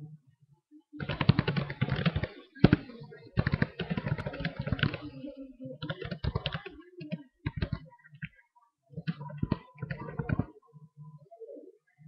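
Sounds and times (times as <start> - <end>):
typing on computer keyboard: 1.0 - 5.1, 5.8 - 8.3, 9.0 - 10.5.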